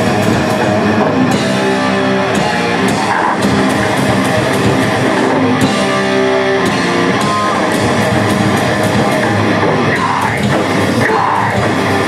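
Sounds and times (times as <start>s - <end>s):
bass guitar: 0.0s - 12.0s
distorted electric guitars: 0.0s - 12.0s
drums: 0.0s - 12.0s.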